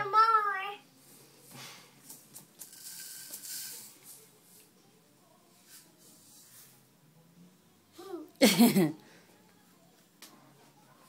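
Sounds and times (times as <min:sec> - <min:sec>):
sprinkles rattling in plastic cup: 0:02.3 - 0:04.2.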